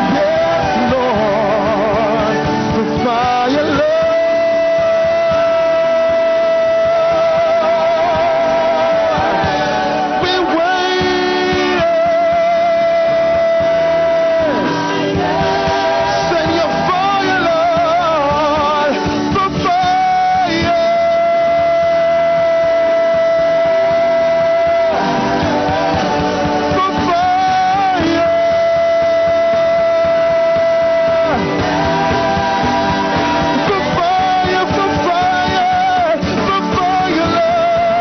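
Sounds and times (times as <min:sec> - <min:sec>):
gospel band accompaniment: 0:00.0 - 0:38.0
light drum beat: 0:00.0 - 0:38.0.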